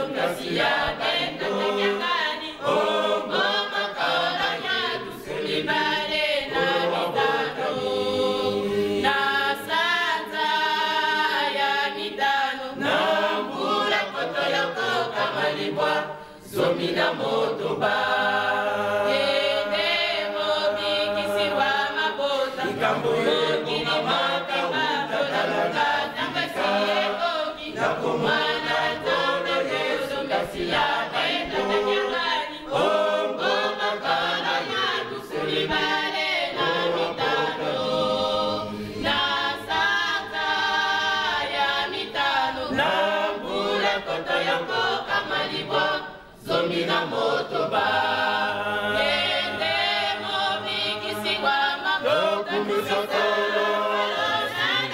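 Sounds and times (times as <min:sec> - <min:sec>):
choir singing a hymn: 0:00.0 - 0:54.9.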